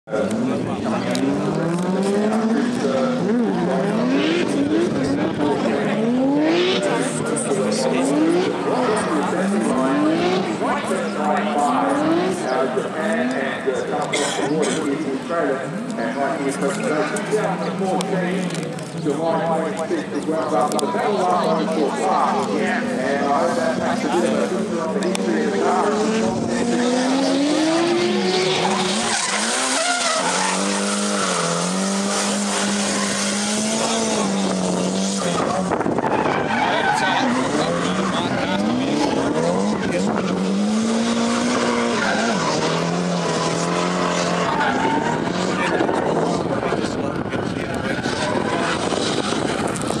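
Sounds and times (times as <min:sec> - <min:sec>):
car engine revving: 0:00.0 - 0:50.0
tyres squealing: 0:26.7 - 0:39.8.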